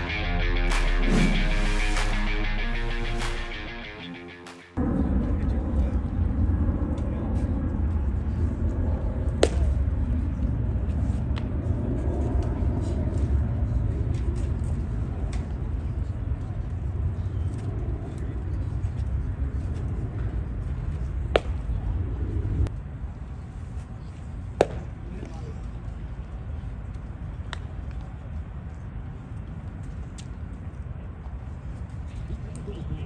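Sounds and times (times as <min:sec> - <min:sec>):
baseball cracks: 0:09.4 - 0:09.8, 0:21.4 - 0:21.7, 0:24.6 - 0:25.0.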